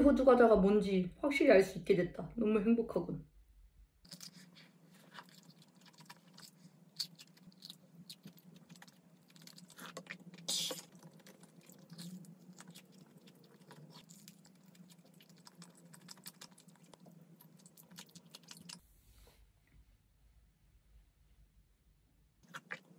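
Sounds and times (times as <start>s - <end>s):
person chewing pastries: 4.0s - 18.9s, 22.4s - 22.9s.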